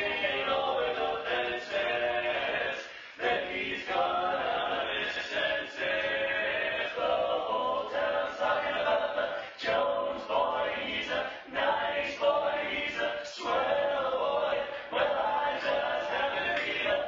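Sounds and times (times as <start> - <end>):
men singing a cappella: 0.0 - 17.0
singers breathing: 2.8 - 3.4, 9.2 - 9.6.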